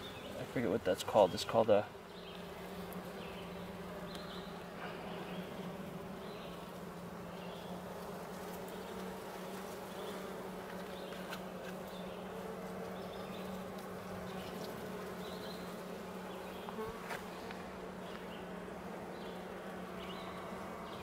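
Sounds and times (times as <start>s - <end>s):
honey bees buzzing: 0.0s - 21.0s.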